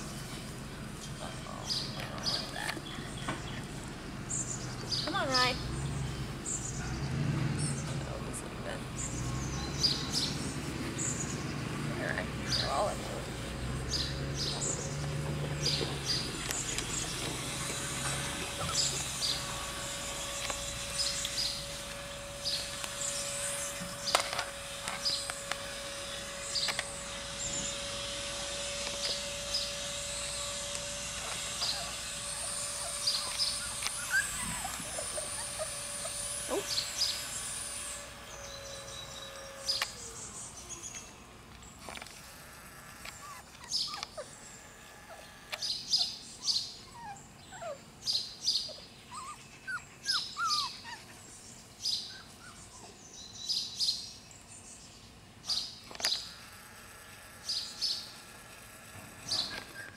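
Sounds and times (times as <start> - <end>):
steady hum: 0.0 - 48.0
small birds chirping: 0.0 - 56.4, 57.1 - 58.3, 59.1 - 59.9.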